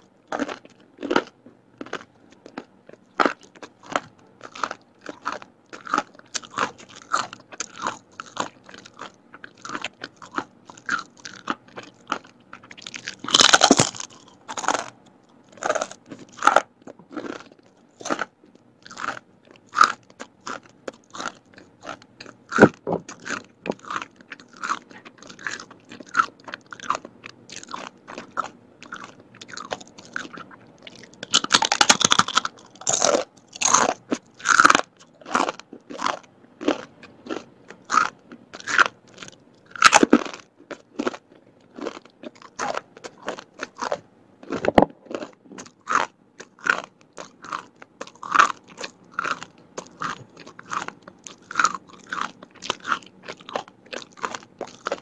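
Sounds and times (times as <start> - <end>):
crunching and chewing crispy cracker: 0.0 - 55.0.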